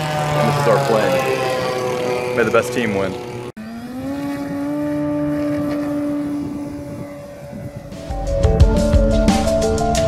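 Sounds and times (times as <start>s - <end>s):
model airplane motor droning: 0.0s - 8.5s.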